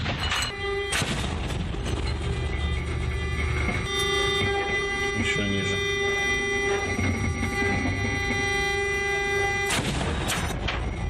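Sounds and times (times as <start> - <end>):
vehicle engine rumble: 0.0 - 11.0
steady high electronic whines: 1.5 - 11.0.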